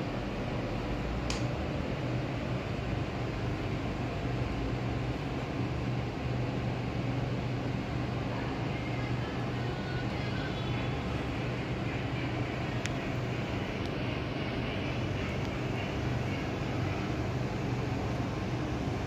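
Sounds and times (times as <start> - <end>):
low mechanical hum: 0.0 - 19.0
brief click: 1.3 - 1.5.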